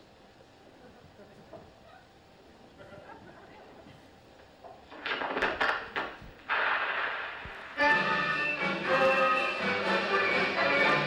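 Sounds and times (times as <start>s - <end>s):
faint stifled laugh or murmur: 0.4s - 4.2s.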